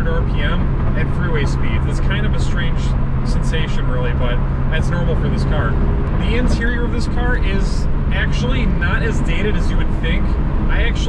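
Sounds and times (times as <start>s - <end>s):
car engine droning: 0.0s - 11.0s
man talking: 0.0s - 11.0s
road noise inside car: 0.0s - 11.0s.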